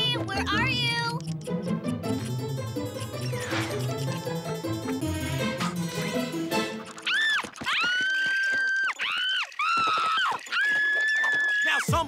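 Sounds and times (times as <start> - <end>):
cartoon girl screaming: 7.0 - 11.6.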